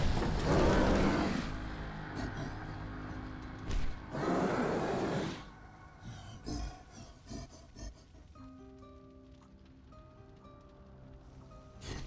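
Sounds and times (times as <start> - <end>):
monster growling: 0.0 - 3.1, 4.1 - 8.0.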